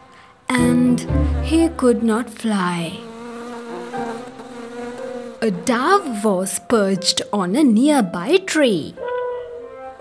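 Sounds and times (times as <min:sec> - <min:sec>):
cartoon bee buzzing: 0:00.5 - 0:06.3.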